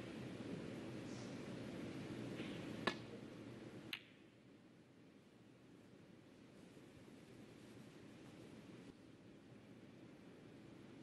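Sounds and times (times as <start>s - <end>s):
faint hall ambience: 0.0s - 11.0s.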